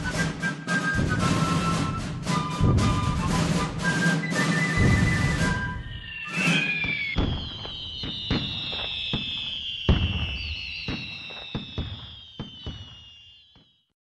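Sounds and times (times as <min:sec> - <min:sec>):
fife and drum music: 0:00.0 - 0:13.0
firework bangs and crackles: 0:00.0 - 0:13.9
high firework whistles: 0:00.0 - 0:13.9
whistling firework rocket: 0:00.0 - 0:13.9.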